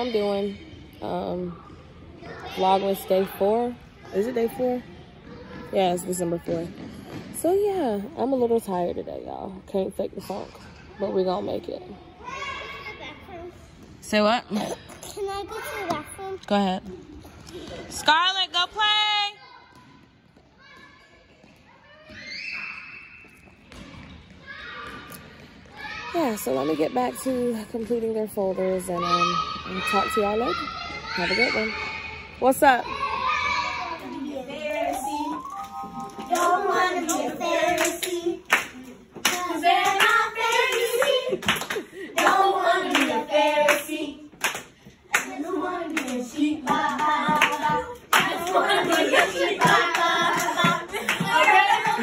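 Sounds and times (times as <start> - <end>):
children shouting in echoing hall: 30.5 - 34.2
girls singing together: 33.8 - 52.0
hand claps: 44.4 - 52.0.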